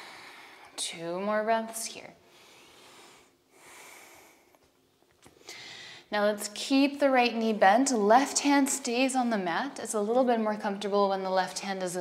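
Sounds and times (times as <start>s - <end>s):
woman breathing: 0.0s - 0.8s, 2.2s - 4.7s, 5.3s - 6.1s.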